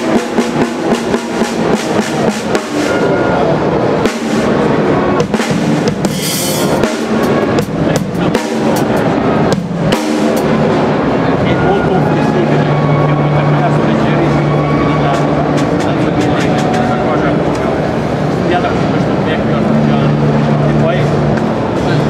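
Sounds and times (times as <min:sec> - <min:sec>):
sharp drum kit hits: 0:00.0 - 0:03.2, 0:04.0 - 0:11.0
other drumming: 0:00.0 - 0:11.4, 0:12.5 - 0:18.4
dense din of voices: 0:00.0 - 0:22.0.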